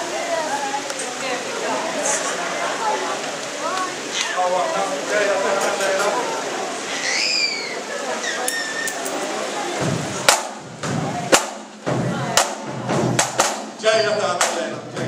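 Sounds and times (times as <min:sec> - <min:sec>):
audience murmur: 0:00.0 - 0:13.8
drum band playing: 0:08.9 - 0:15.0.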